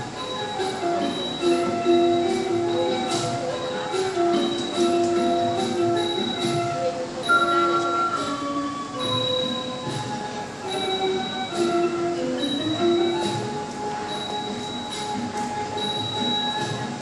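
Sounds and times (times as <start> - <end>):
small hand cymbals ringing: 7.2 - 9.8.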